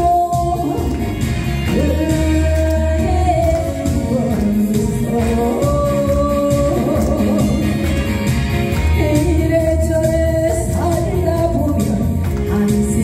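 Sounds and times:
woman singing into microphone: 0.0s - 8.2s, 8.8s - 13.0s
instrumental accompaniment: 0.0s - 13.0s.

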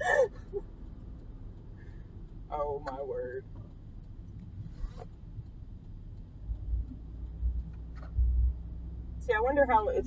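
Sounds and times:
car cabin rumble: 6.2s - 10.0s.

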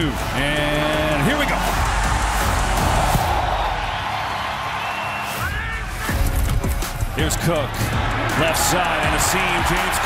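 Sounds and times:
background music: 0.0s - 10.0s
stadium crowd cheering: 0.0s - 10.0s.

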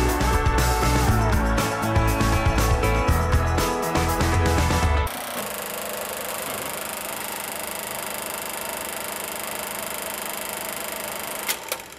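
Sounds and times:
film projector whirring: 5.1s - 11.9s.

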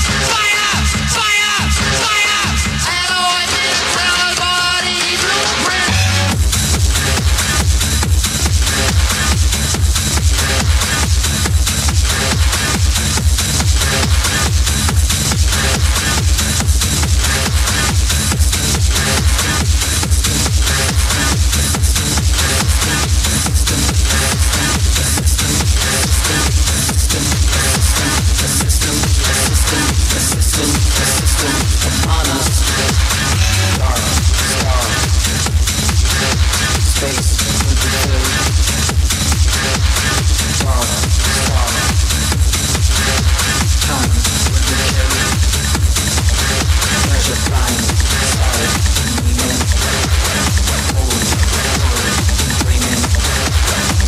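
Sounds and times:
melodic electronic music: 0.0s - 54.0s
heavy kick drum: 5.9s - 54.0s
hi-hats and percussion: 6.3s - 54.0s.

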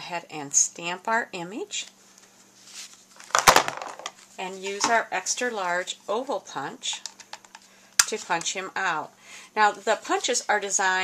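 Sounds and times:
faint rustle: 2.0s - 3.2s.

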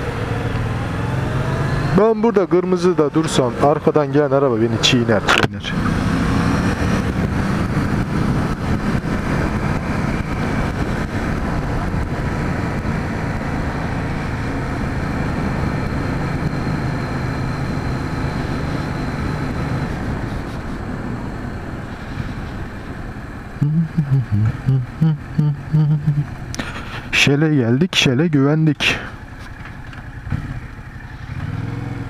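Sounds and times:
motorcycle engine cruising: 0.0s - 32.0s
wind noise: 5.8s - 24.8s.

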